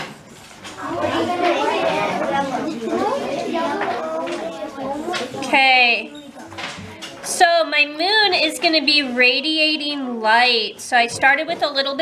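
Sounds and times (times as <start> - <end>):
children talking: 0.6 - 12.0.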